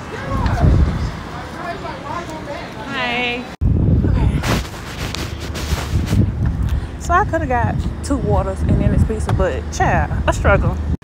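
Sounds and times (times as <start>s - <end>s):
wind buffeting microphone: 0.0s - 1.5s, 3.6s - 11.0s.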